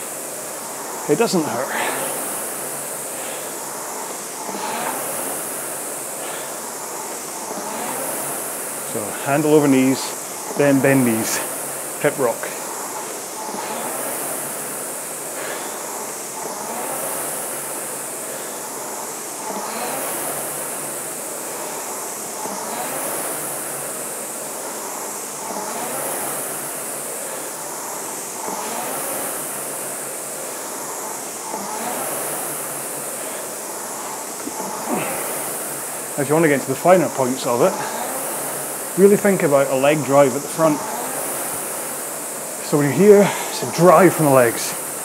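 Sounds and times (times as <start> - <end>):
rowing machine flywheel whirring: 0.0 - 45.0.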